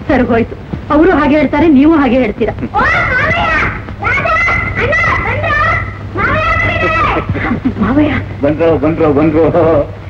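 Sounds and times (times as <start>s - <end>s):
excited children's voices: 2.6s - 7.6s.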